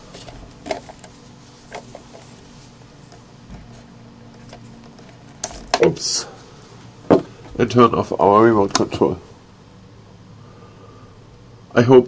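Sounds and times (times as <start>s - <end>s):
faint steady hum: 0.0s - 12.0s
small clicks and handling noises: 3.0s - 5.9s.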